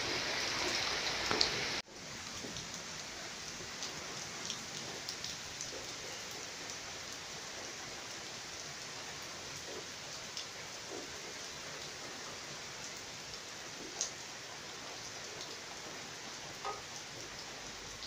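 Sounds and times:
rain falling on leaves: 0.0s - 18.0s.

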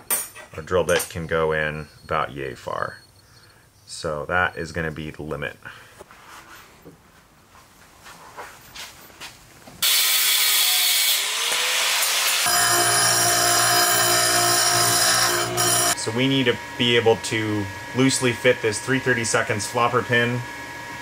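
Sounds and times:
angle grinder cutting metal: 9.8s - 16.4s.

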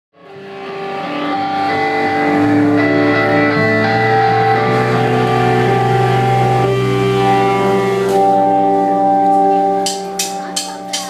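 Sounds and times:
keyboard notes: 0.2s - 11.0s
ringing electric guitar: 0.2s - 11.0s.

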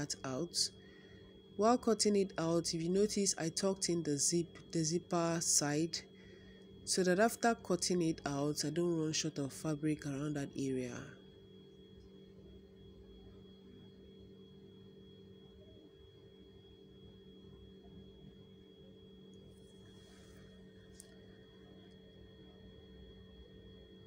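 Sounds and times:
steady electrical hum: 0.0s - 24.0s.

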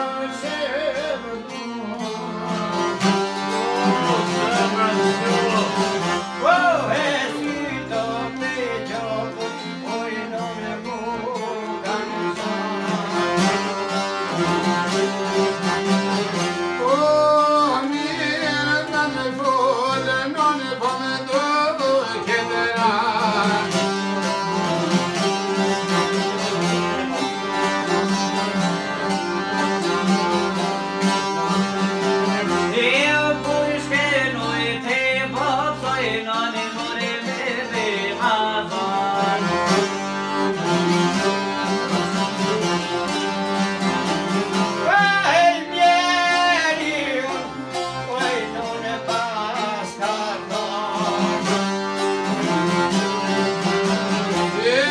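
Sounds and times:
man singing: 0.0s - 13.7s, 16.7s - 25.1s, 32.3s - 40.1s, 44.3s - 51.7s, 54.3s - 54.9s
accordion: 0.0s - 54.9s
plucked lutes: 0.0s - 54.9s.

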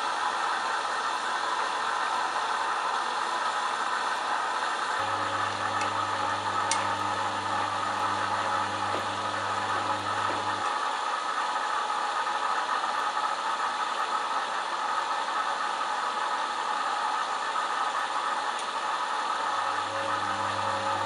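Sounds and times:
washing machine motor hum: 0.0s - 21.0s.

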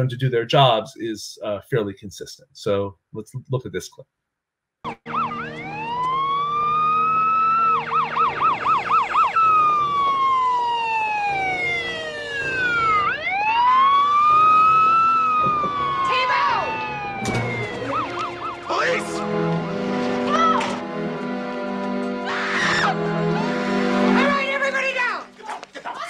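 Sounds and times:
police siren wailing and yelping: 4.9s - 19.2s, 22.2s - 23.6s.

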